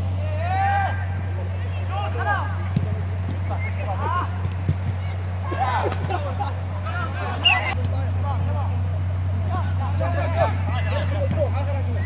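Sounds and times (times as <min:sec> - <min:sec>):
players shouting: 0:00.0 - 0:12.0
steady low hum: 0:00.0 - 0:12.0.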